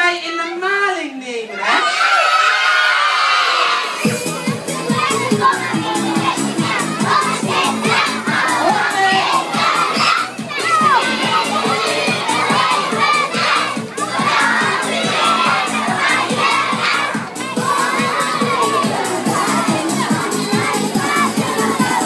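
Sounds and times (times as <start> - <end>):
crowd of children shouting: 1.4 - 22.0
loud dance music: 3.6 - 22.0.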